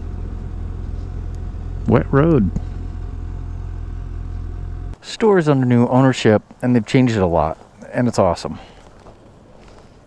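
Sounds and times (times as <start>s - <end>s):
motorcycle engine running at low revs: 0.0s - 5.0s.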